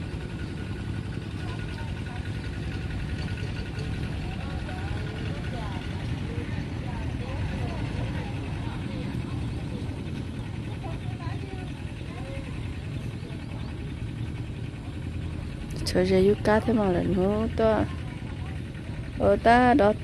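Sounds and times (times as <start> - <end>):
distant voices talking and calling: 0.0 - 20.0.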